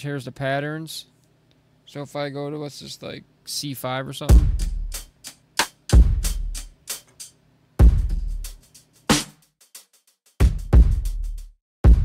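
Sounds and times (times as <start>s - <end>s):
deep kick drums: 4.3s - 5.0s, 5.9s - 6.6s, 7.8s - 8.5s, 10.4s - 12.0s
snare and hi-hat hits: 4.3s - 12.0s.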